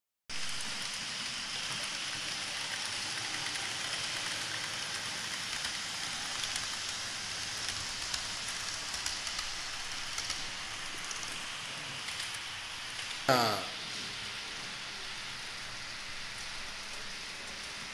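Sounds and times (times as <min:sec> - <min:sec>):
model trains whirring on rails: 0:00.3 - 0:17.9.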